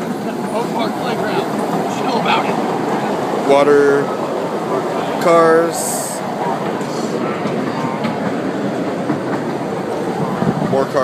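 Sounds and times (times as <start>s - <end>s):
train wheels on rails: 0.0s - 11.0s.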